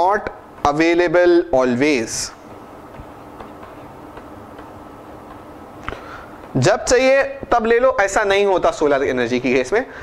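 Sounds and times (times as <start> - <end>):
low room hum: 0.0 - 10.0
stylus tapping on pen tablet: 2.9 - 6.6.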